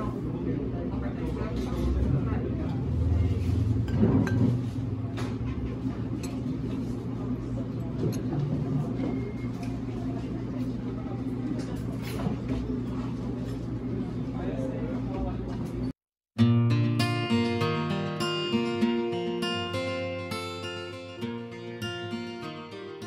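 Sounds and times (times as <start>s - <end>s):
low hum: 1.6s - 9.7s.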